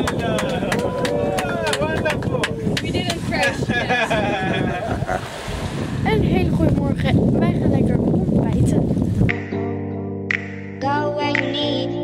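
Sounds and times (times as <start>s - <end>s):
wind buffeting microphone: 0.0s - 9.4s.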